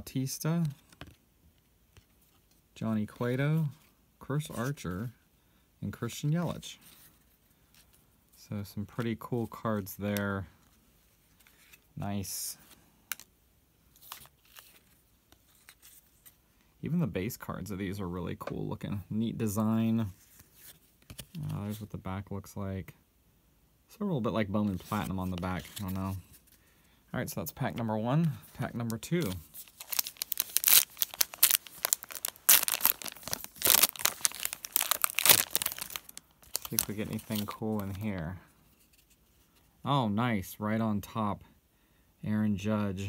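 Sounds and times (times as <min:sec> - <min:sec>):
foil wrapper crinkling and tearing: 0:29.0 - 0:38.0.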